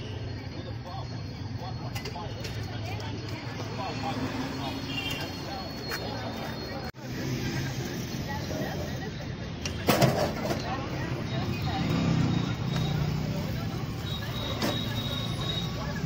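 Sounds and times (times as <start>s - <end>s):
indistinct voices: 0.0s - 16.0s
road traffic: 0.0s - 16.0s.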